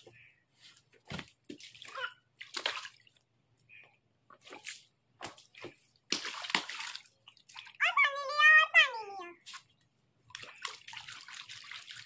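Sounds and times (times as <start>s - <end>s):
water splashing in paddling pool: 1.1s - 3.3s, 4.4s - 7.8s, 9.4s - 12.0s.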